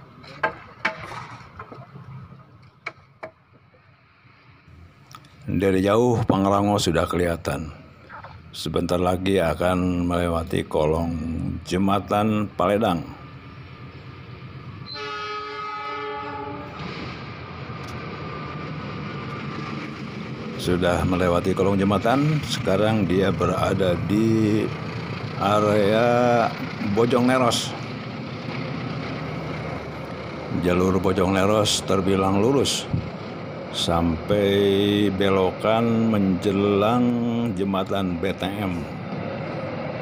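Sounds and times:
train engine and wheels rumbling: 0.0s - 40.0s
locomotive air horn blast: 14.8s - 17.0s.

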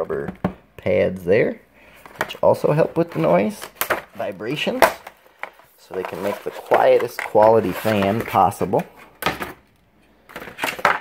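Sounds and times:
cardboard packaging rustling: 2.0s - 11.0s.

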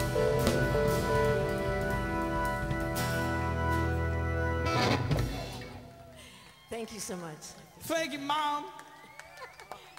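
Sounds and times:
drums and cymbals hit ringing: 0.0s - 4.0s.

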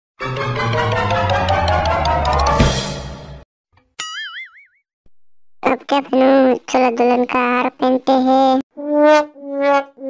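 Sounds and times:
background music: 0.2s - 3.4s
cartoon boing sound effect: 4.0s - 4.8s.

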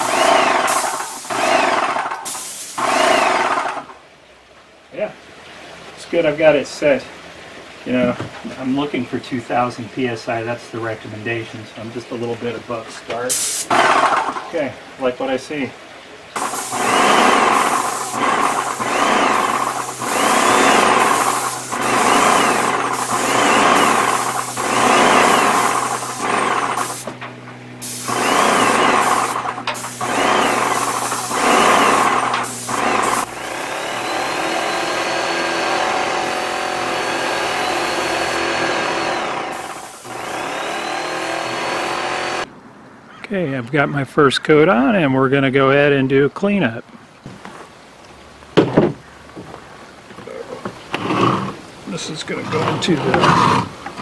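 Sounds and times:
paint sprayer hissing bursts: 0.0s - 3.9s, 13.3s - 14.4s, 16.4s - 27.2s, 27.8s - 42.5s
high whine: 16.4s - 41.7s
pump humming: 16.4s - 42.5s.

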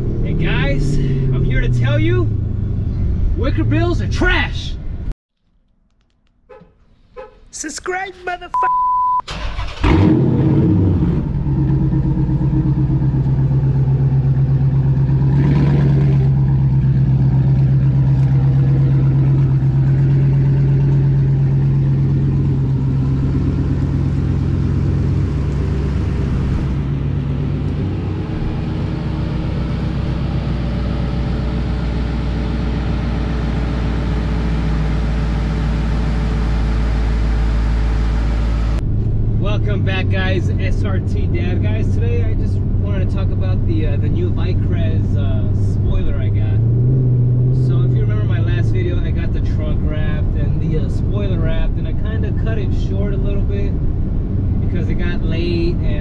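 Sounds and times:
short beep: 8.5s - 9.3s
car engine starting and idling: 9.2s - 56.0s.

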